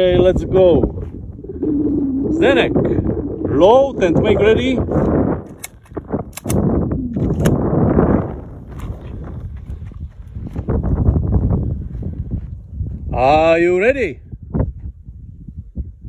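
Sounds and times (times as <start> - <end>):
handling and wind rumble: 0.0 - 16.0
pistol metallic clicks: 5.5 - 6.6.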